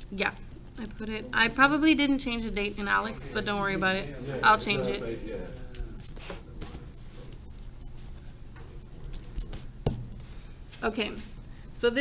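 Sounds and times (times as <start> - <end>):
paper notebook scratching and rustling: 0.0 - 10.3.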